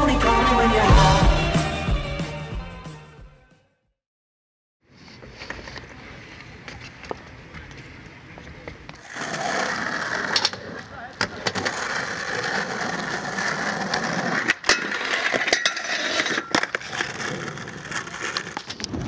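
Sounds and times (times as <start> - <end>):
skateboard sliding on ledge: 4.9 - 19.0
skateboard wheels rolling on concrete: 4.9 - 19.0
skateboard clacks: 6.6 - 19.0.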